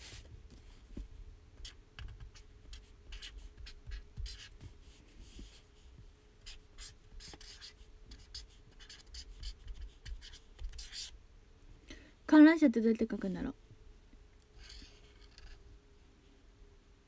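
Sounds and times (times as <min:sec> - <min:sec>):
low steady hum: 0:00.0 - 0:17.0
pen scratching on paper: 0:01.6 - 0:04.7, 0:06.4 - 0:11.2, 0:14.6 - 0:15.6.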